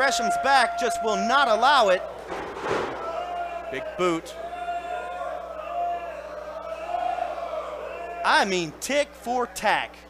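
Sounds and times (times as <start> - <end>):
crowd chanting: 2.0 - 8.3.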